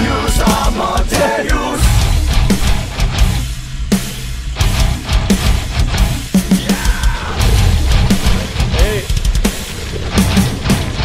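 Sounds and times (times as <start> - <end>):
driving drum beat: 0.0 - 11.0
heavy rock music: 0.0 - 11.0.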